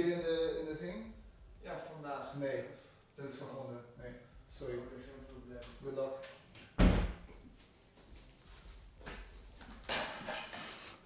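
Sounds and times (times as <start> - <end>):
door shutting with thud: 6.8 - 7.3.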